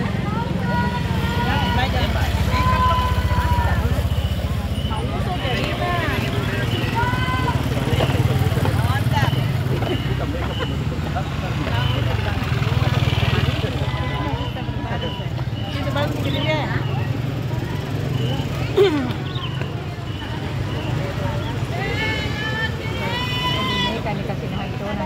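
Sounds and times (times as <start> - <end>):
people talking: 0.0 - 25.0.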